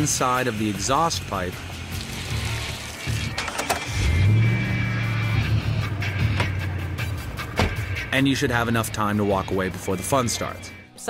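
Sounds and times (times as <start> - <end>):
background music: 0.0 - 11.0
car engine starting and idling: 0.1 - 10.3.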